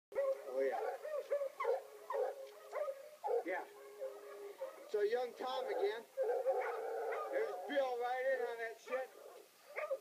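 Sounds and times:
hounds baying: 0.1 - 10.0.

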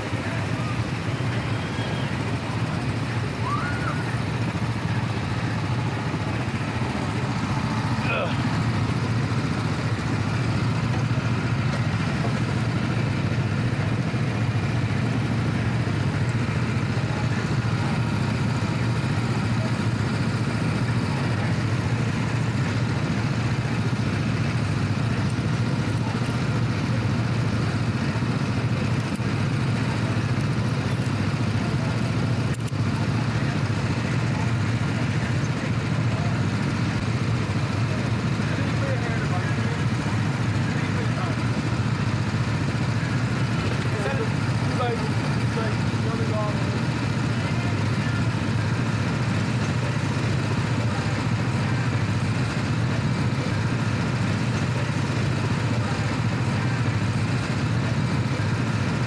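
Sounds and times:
go-kart engines idling: 0.0 - 59.0.

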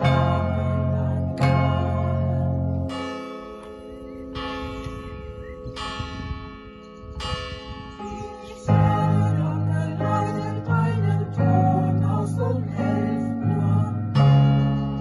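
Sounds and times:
church bell strokes: 0.0 - 13.4
bass and keyboard playing: 0.0 - 15.0.

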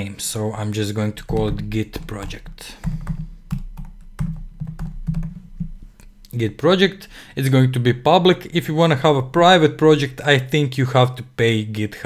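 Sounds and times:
typing on computer keyboard: 2.0 - 5.5.

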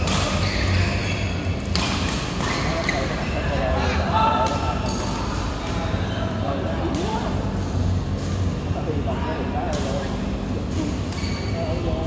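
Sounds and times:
rackets striking shuttlecock: 0.0 - 1.0, 1.6 - 3.2
voices in a hall: 0.0 - 12.0.

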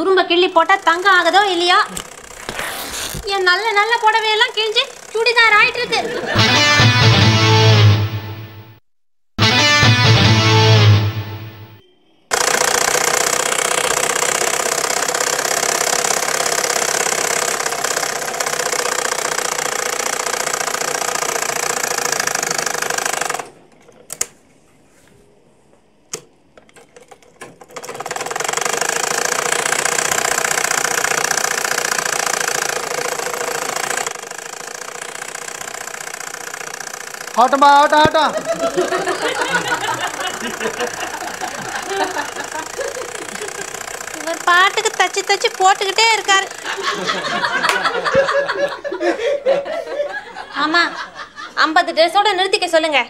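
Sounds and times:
sewing machines running: 0.1 - 7.1, 12.3 - 23.6, 27.0 - 48.1.

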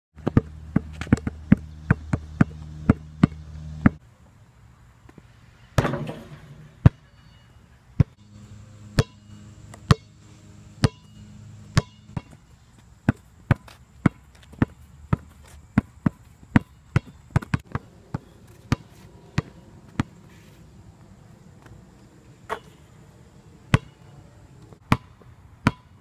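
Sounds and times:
basketball bouncing on asphalt: 0.2 - 4.0, 5.8 - 7.4, 8.0 - 8.3, 8.9 - 10.2, 10.8 - 20.3, 23.7 - 24.1, 24.8 - 26.0.

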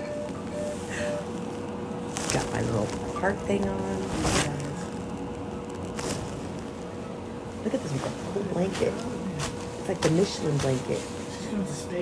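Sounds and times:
equipment hum and air noise: 0.0 - 12.0.

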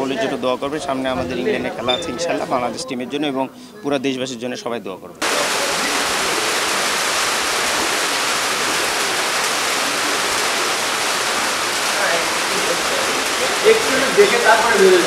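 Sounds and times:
faint voices: 5.2 - 15.0
rain hissing: 5.2 - 15.0.

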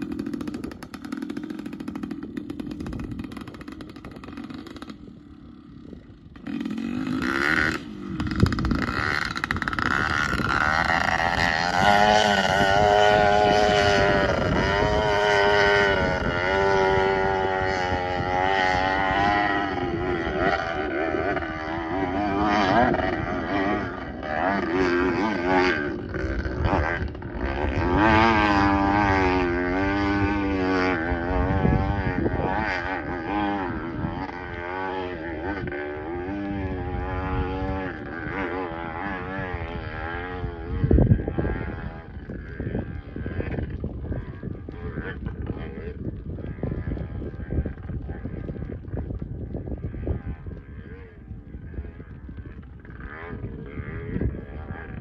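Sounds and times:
distant motorcycle engine revving: 0.0 - 55.0.

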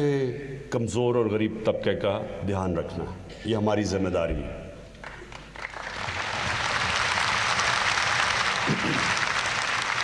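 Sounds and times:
large audience applauding: 5.0 - 10.0.

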